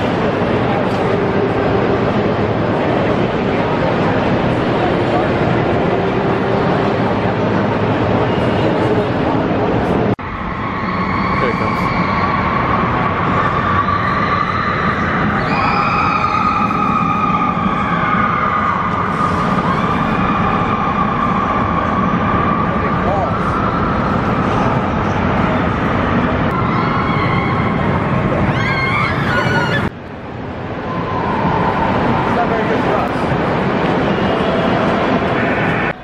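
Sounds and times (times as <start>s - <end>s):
roller coaster roaring on track: 0.0s - 36.0s.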